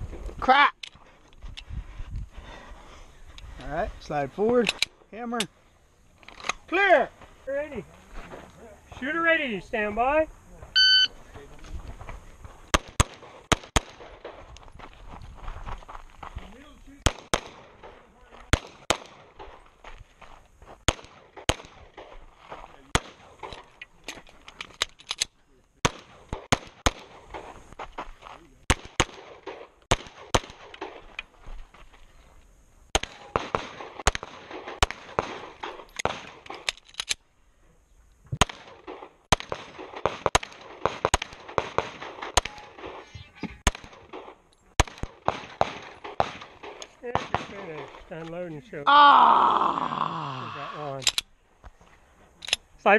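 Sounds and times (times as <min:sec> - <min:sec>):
pistol shots: 0:12.7 - 0:14.4, 0:17.0 - 0:19.6, 0:20.9 - 0:22.2, 0:25.8 - 0:27.4, 0:28.7 - 0:31.0, 0:32.9 - 0:36.6, 0:38.4 - 0:47.7.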